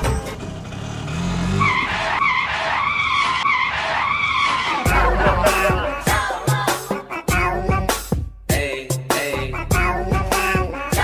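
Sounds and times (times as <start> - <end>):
tyre screech: 1.0 - 4.9
background music: 4.0 - 11.0.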